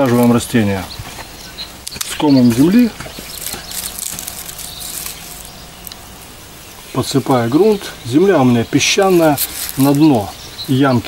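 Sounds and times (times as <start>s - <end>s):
soil rustling and crumbling: 0.0s - 11.0s.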